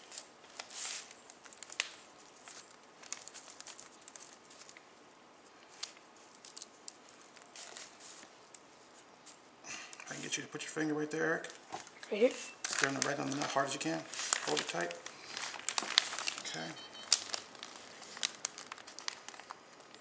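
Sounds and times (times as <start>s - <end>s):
paper rustling and crinkling: 0.0s - 4.9s, 5.6s - 9.4s, 11.3s - 20.0s.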